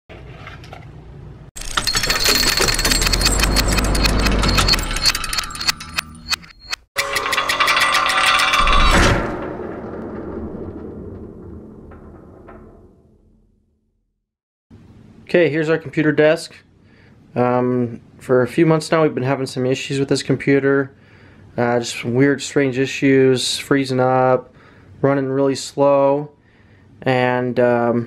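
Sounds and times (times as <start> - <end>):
rapid mechanical clicking and rattling: 1.6 - 8.9
ringing hit: 1.7 - 13.6
low rumble: 8.2 - 14.1.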